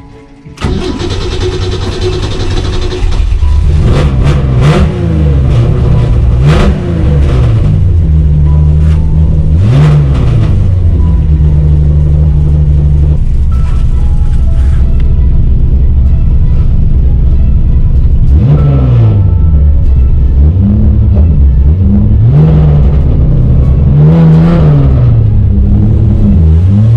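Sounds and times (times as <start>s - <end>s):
car engine idling: 0.6s - 26.9s
car engine starting and revving: 0.6s - 26.9s.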